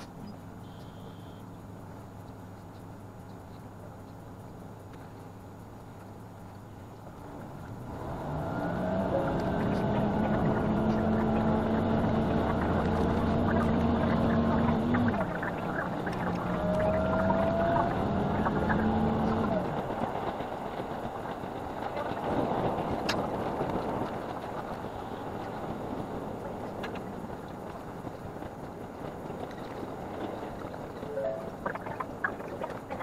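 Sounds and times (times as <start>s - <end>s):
diesel railcar engine droning: 0.0s - 33.0s
rail running noise: 0.0s - 33.0s.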